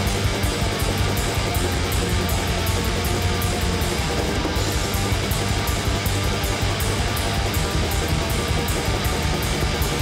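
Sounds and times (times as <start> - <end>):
distorted electric guitar: 0.0 - 10.0
fast drum or cymbal hits: 0.0 - 10.0.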